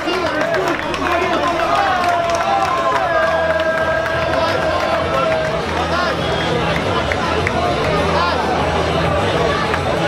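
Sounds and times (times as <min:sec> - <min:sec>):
crowd shouting: 0:00.0 - 0:10.0.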